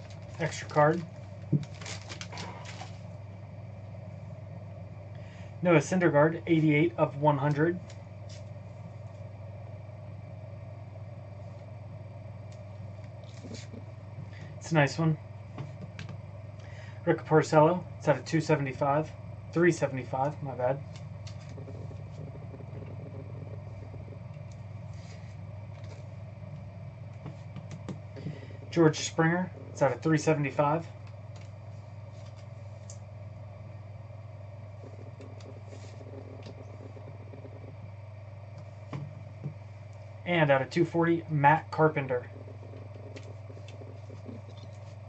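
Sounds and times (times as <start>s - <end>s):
low electrical hum: 0.0s - 45.0s
plastic sleeve rustling and clicking: 1.5s - 3.0s.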